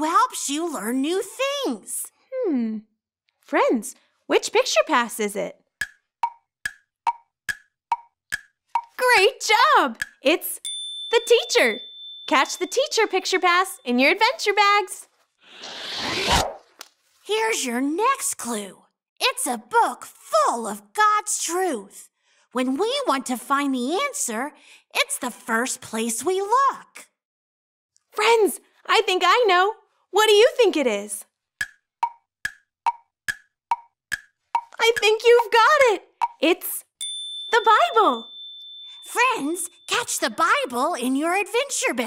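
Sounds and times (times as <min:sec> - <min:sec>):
woman speaking: 0:03.5 - 0:05.6, 0:09.0 - 0:10.6, 0:11.2 - 0:15.1, 0:17.3 - 0:22.0, 0:28.2 - 0:31.2, 0:34.8 - 0:36.9, 0:37.6 - 0:38.3, 0:39.0 - 0:42.0
wood-block tick-tock: 0:05.8 - 0:09.0, 0:10.0 - 0:12.3, 0:31.6 - 0:35.1
swishing sound effect: 0:15.5 - 0:16.7.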